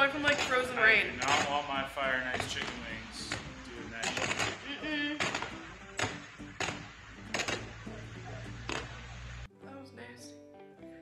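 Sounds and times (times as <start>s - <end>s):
power lines arcing bangs: 0.0s - 9.5s
steady low rumble: 4.8s - 9.5s.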